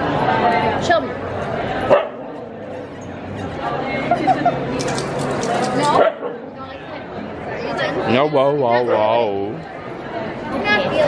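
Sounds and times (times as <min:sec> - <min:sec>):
background crowd voices: 0:00.0 - 0:11.0.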